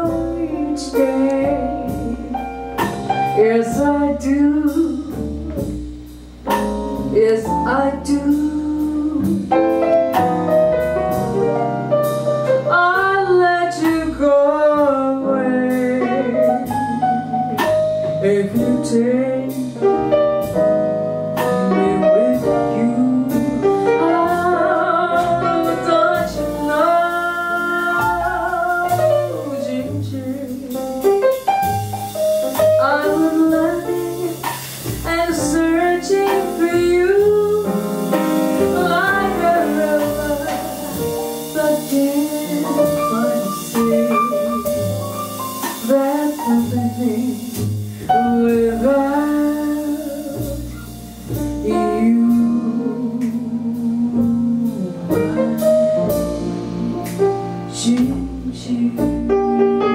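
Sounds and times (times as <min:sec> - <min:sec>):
woman singing: 0:00.0 - 0:02.5, 0:03.2 - 0:05.8, 0:07.1 - 0:09.7, 0:12.7 - 0:20.0, 0:21.4 - 0:31.1, 0:32.5 - 0:50.9, 0:51.6 - 0:56.1, 0:57.7 - 0:59.9
bass: 0:00.0 - 0:59.9
drums: 0:00.0 - 0:59.9
piano: 0:00.0 - 0:59.9.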